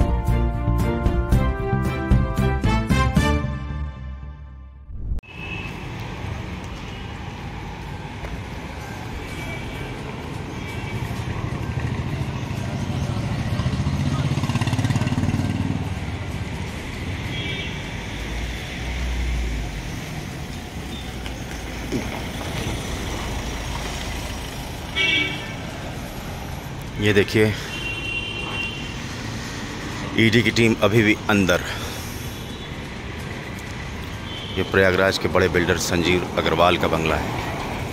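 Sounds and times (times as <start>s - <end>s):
street traffic: 0.0s - 37.9s.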